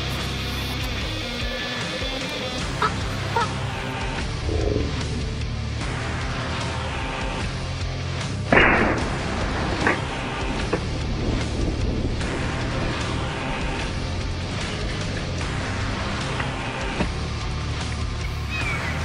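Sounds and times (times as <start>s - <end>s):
background music: 0.0s - 19.0s
shotgun blast: 8.5s - 9.4s.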